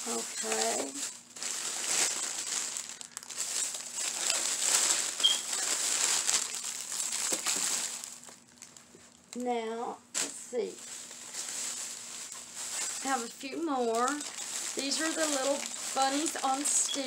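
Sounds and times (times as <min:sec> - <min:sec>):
plastic bag crinkling: 0:00.0 - 0:09.4, 0:10.1 - 0:17.0.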